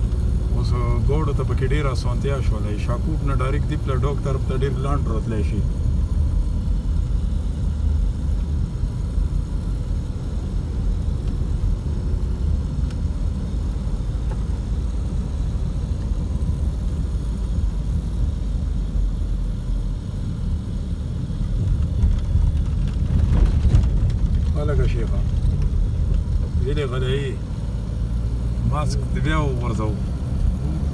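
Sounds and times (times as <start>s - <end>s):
car interior road rumble: 0.0s - 30.9s.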